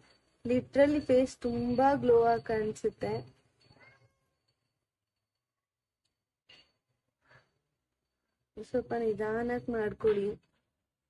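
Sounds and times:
woman's voice: 0.5s - 3.3s, 8.6s - 10.5s.

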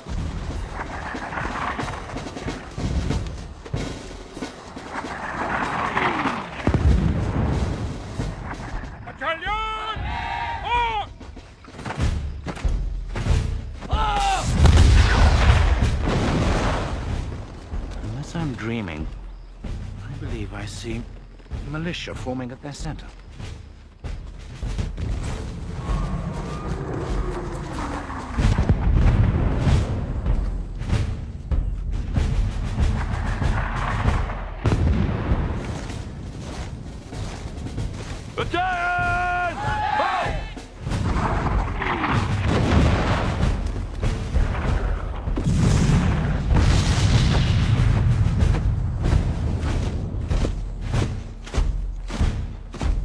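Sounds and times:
low booms: 0.0s - 9.2s, 11.2s - 38.4s, 40.4s - 53.0s
dramatic film score: 0.0s - 53.0s
musket fire: 14.2s - 18.0s, 32.1s - 52.4s
cannon booms: 14.4s - 17.5s, 40.8s - 49.4s
deep rumble: 14.5s - 38.4s, 40.5s - 53.0s.

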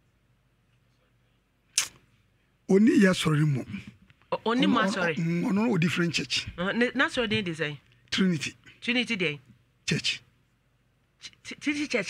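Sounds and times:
short sharp hiss: 1.7s - 2.1s.

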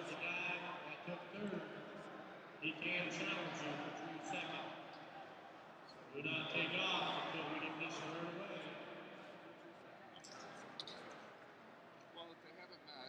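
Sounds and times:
man's voice: 0.0s - 1.8s, 2.6s - 4.8s, 6.1s - 8.9s
indistinct voices in a hall: 0.0s - 13.0s.

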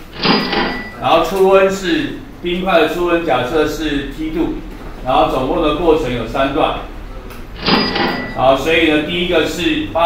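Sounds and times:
clattering with bell-like ring: 0.2s - 1.0s, 7.6s - 8.4s.

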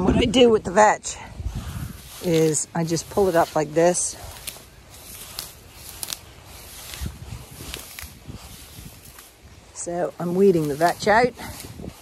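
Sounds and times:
hedge foliage rustling: 0.0s - 12.0s
stems snapping: 2.0s - 11.3s.

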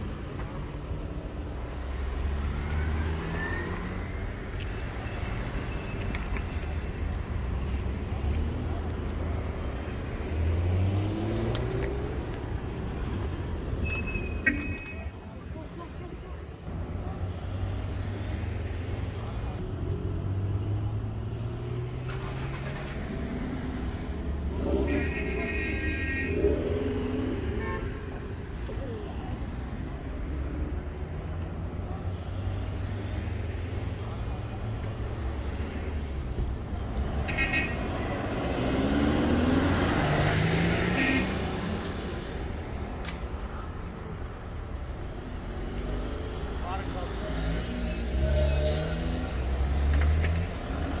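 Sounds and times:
people's voices: 14.4s - 19.8s, 24.5s - 32.6s.

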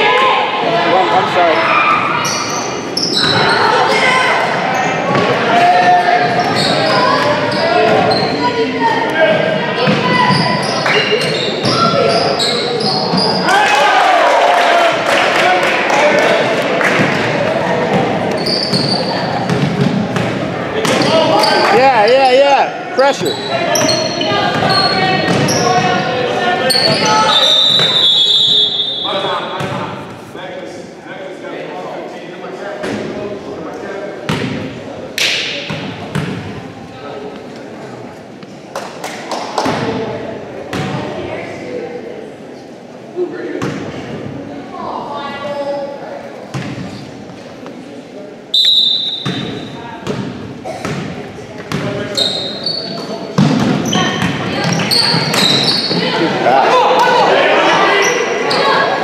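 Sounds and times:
scattered voices: 49.6s - 59.0s.

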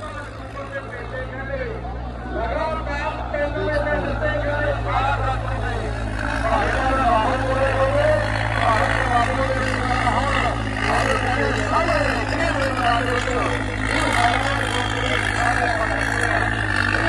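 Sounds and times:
tractor diesel engine droning: 0.0s - 17.0s
voices talking loudly: 0.0s - 17.0s.

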